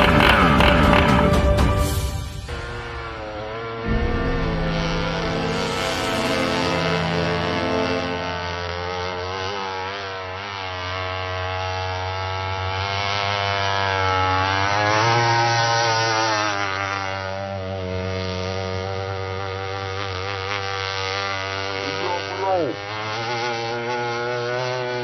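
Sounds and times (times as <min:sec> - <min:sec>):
model powerboat engine at high speed: 0:00.0 - 0:01.9, 0:02.6 - 0:25.0.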